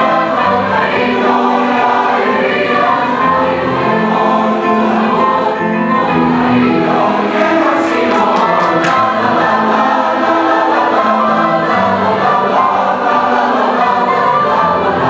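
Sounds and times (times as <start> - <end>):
choir singing latin dance song: 0.0 - 15.0.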